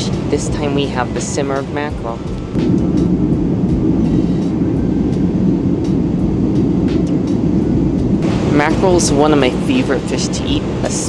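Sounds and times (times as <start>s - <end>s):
airliner cabin roar in flight: 0.0s - 11.0s.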